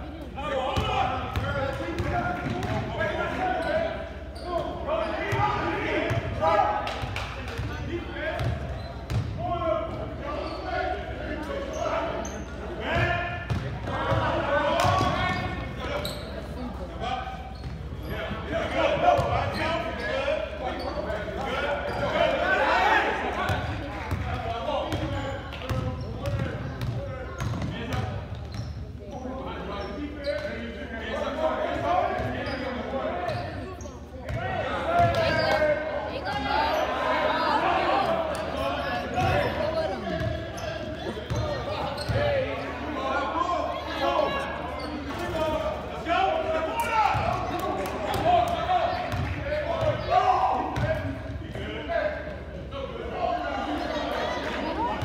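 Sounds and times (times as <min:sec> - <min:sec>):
voices echoing in hall: 0:00.0 - 0:55.0.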